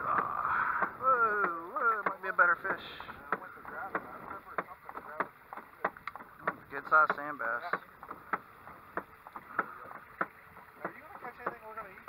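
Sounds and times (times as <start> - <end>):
mallet knocking on boat hull: 0.1 - 11.8.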